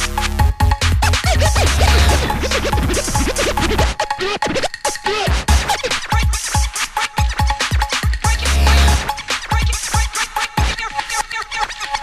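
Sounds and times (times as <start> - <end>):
heavy bass beat: 0.0 - 4.0, 5.1 - 10.9
turntable scratching: 0.0 - 12.0.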